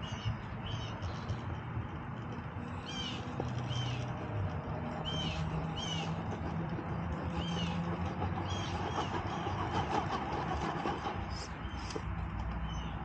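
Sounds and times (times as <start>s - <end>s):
bird chirping: 0.0s - 1.6s, 2.7s - 4.2s, 4.9s - 6.2s, 7.2s - 9.5s, 12.6s - 13.0s.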